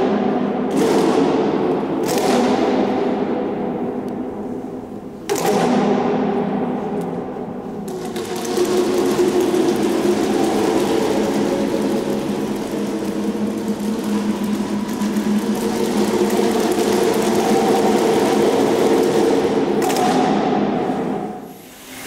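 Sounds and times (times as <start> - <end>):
hissing rapid rattling noise: 7.9 - 22.0.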